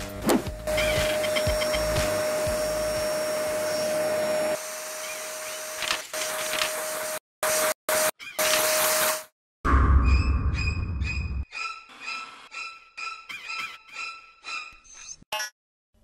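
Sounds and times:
vacuum cleaner whine and hiss: 1.1 - 7.2.

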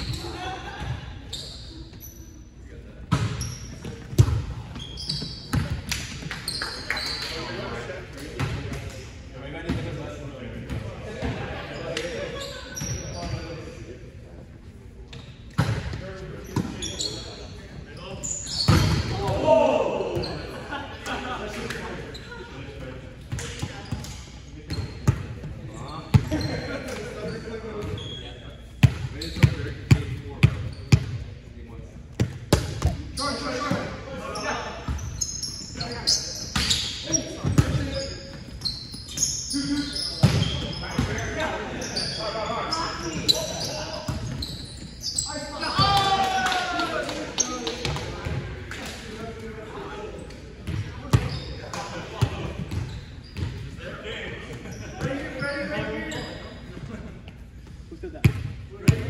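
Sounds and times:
sneakers squeaking on court: 0.0 - 2.5, 3.1 - 7.4, 12.3 - 13.5, 15.1 - 19.3, 23.3 - 31.3, 32.0 - 45.8, 50.2 - 53.8, 54.4 - 59.0
players calling out: 18.2 - 20.8.

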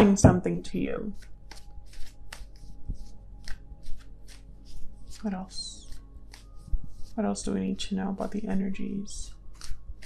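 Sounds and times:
cards being shuffled: 1.0 - 7.2, 9.5 - 10.0.

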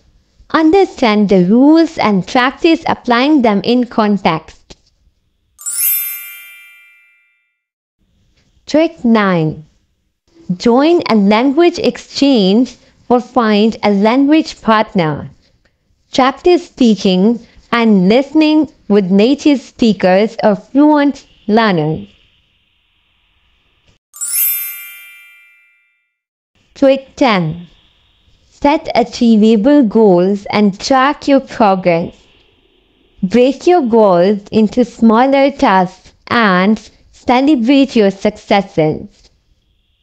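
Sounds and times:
bell-like chime: 5.6 - 7.6, 24.2 - 26.2.

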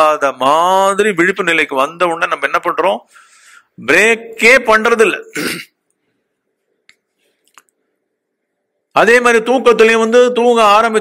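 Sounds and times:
man clearing his throat: 5.3 - 5.8.

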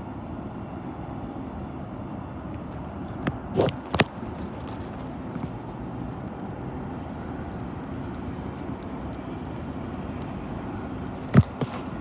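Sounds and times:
low outdoor rumble: 0.0 - 12.0
footsteps crunching on gravel: 2.6 - 9.3, 11.2 - 12.0.

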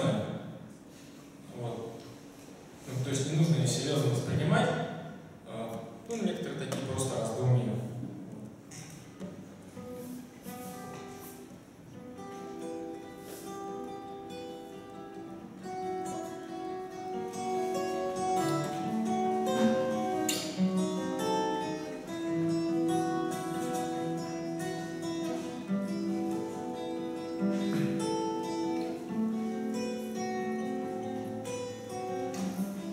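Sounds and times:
acoustic guitar chords: 3.6 - 32.9.

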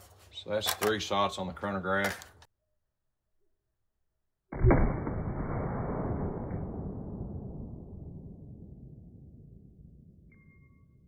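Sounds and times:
rifle shot with rumbling decay: 4.6 - 10.1.

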